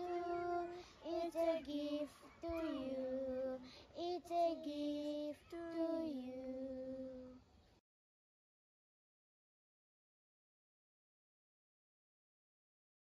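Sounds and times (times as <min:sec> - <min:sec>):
girls singing unaccompanied: 0:00.0 - 0:07.3.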